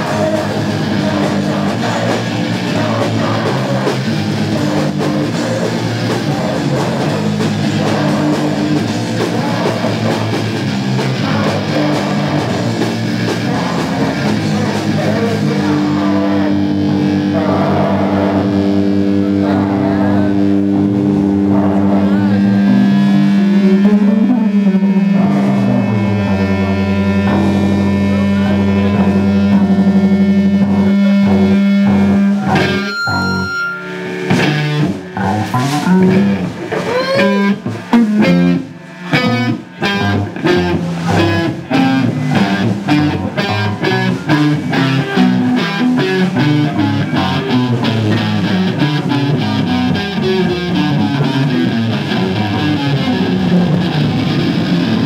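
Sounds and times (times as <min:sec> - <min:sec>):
rock band playing: 0:00.0 - 0:55.0.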